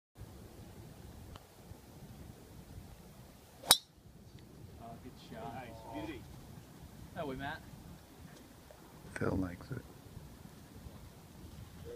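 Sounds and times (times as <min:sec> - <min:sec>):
golf driver striking ball: 0:03.6 - 0:03.9.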